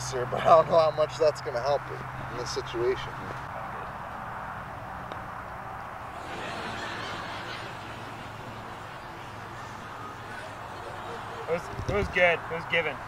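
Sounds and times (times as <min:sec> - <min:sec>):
outdoor background noise: 0:00.0 - 0:13.0.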